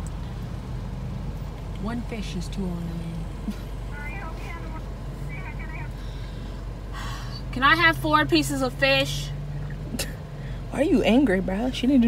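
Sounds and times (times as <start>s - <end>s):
car idling: 0.0s - 12.0s
woman speaking: 1.8s - 3.3s, 3.9s - 6.0s.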